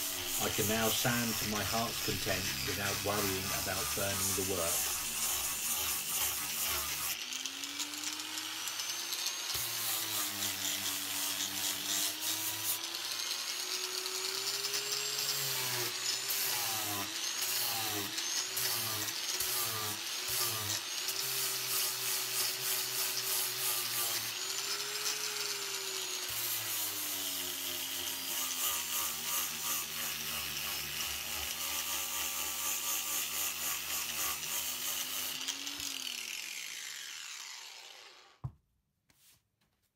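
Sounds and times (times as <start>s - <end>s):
angle grinder whining: 0.0s - 38.4s.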